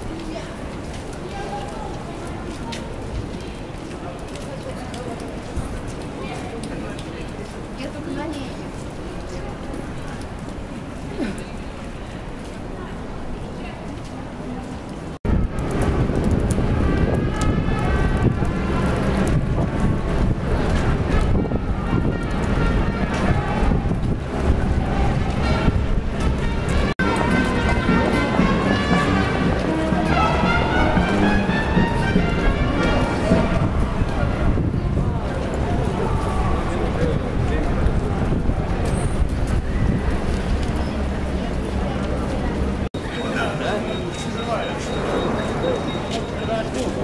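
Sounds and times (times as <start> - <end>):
wind buffeting microphone: 0.0 - 42.9
faint street noise: 0.0 - 47.0.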